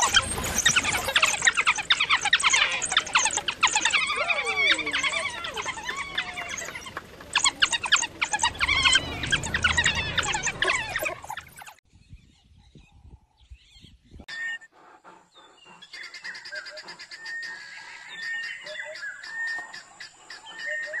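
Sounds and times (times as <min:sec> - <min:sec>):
wild dogs twittering calls: 0:00.0 - 0:11.8, 0:14.3 - 0:21.0.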